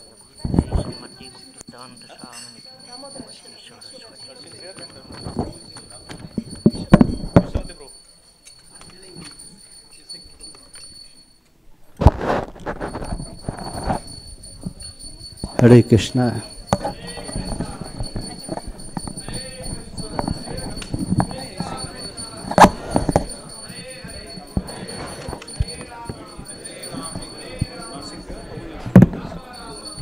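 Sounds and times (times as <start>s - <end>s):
low murmuring voices: 0.0s - 30.0s
knocks and thumps: 5.3s - 7.7s, 16.4s - 23.5s, 28.9s - 29.3s.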